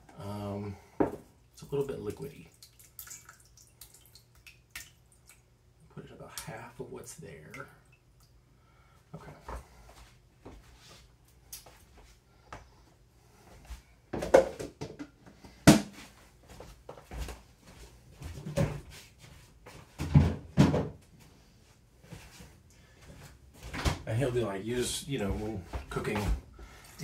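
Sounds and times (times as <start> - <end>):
knocks and thumps of containers: 1.0 - 1.3, 14.1 - 16.0, 20.0 - 21.0.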